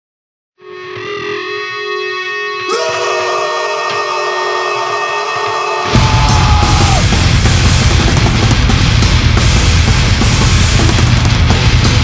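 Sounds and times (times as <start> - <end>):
distorted electric guitar: 0.6 - 12.0
full band with heavy drums: 5.8 - 12.0.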